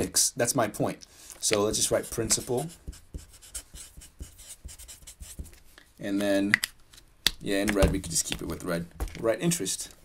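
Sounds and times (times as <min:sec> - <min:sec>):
marker writing on paper: 0:01.7 - 0:05.6.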